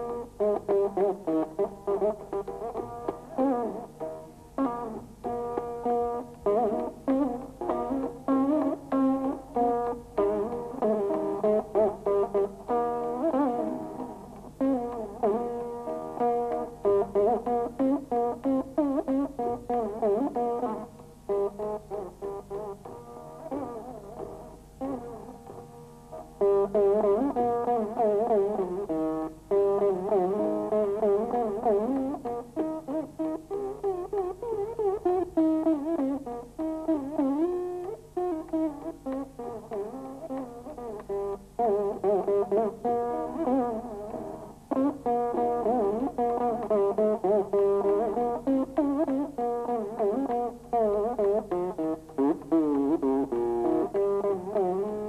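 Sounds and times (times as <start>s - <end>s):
plucked veena with pitch bends: 0.0s - 55.0s.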